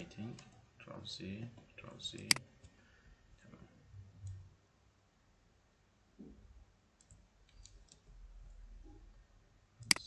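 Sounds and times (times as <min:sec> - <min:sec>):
computer mouse clicks: 0:02.1 - 0:02.8, 0:07.0 - 0:08.1.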